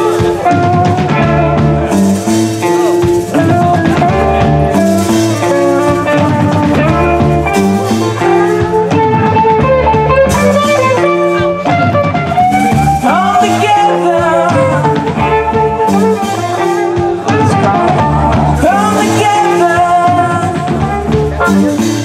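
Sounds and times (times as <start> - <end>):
live rock band playing: 0.0 - 22.0.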